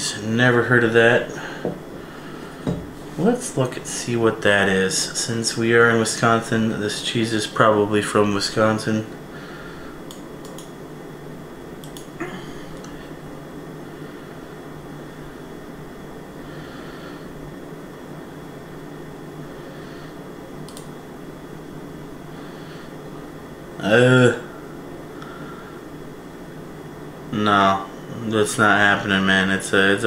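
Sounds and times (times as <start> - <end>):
low room hum: 0.0 - 30.0
soft knock: 2.7 - 2.9
faint clicks: 10.1 - 10.7, 11.8 - 12.1.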